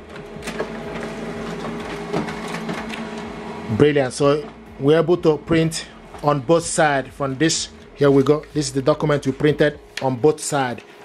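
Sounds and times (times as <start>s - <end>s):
laser printer humming: 0.0s - 11.0s.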